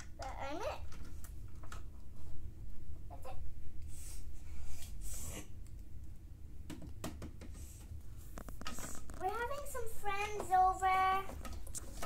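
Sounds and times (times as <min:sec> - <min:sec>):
girl singing wordless tune: 0:09.2 - 0:11.4.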